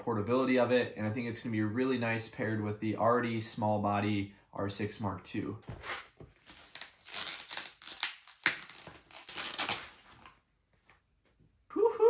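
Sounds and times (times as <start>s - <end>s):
packaging wrap crinkling: 6.4s - 10.4s.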